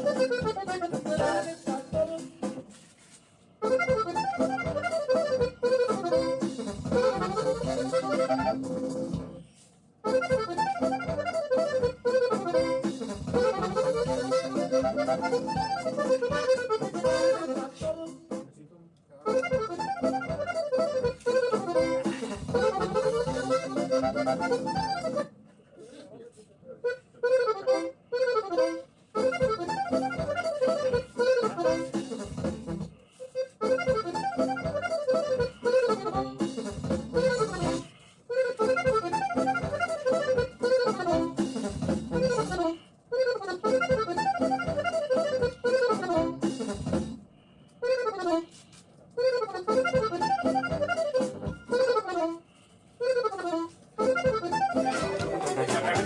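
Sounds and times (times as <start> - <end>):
accordion playing melody: 0.0 - 18.5, 19.2 - 25.4, 26.8 - 56.0.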